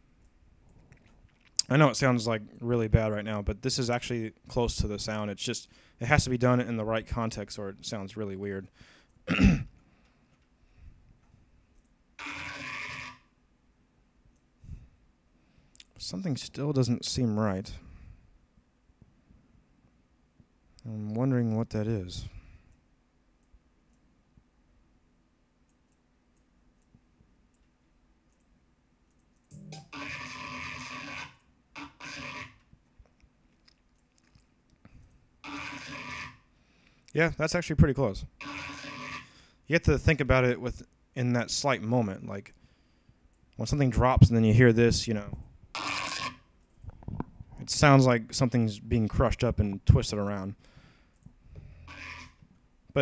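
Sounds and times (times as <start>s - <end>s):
man coughing: 9.3s - 9.8s.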